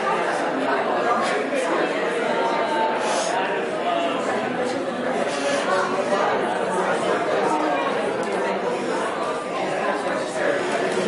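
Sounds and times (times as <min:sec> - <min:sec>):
hubbub of many conversations: 0:00.0 - 0:11.0.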